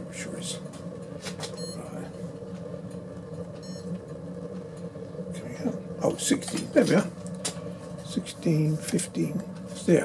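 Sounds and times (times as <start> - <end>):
stove burning with low rumble: 0.0 - 10.0
high electronic beep: 1.6 - 1.8.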